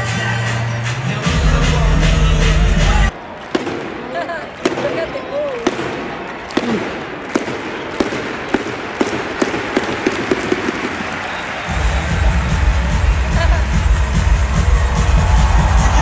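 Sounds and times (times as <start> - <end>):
arena crowd murmur: 0.0 - 16.0
loud arena music: 0.0 - 16.0.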